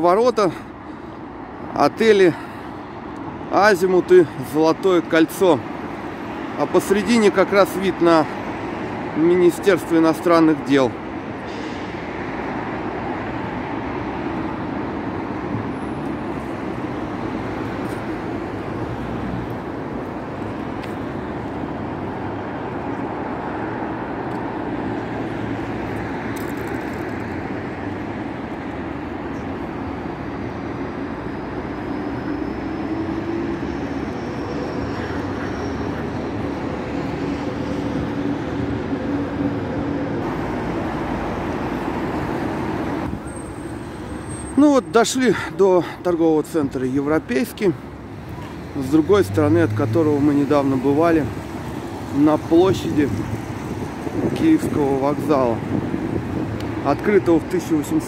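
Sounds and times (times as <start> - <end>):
rush of passing cars: 0.0 - 58.0.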